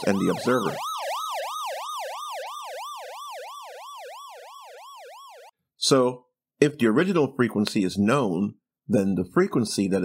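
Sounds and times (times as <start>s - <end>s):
ambulance siren yelping: 0.0s - 5.5s.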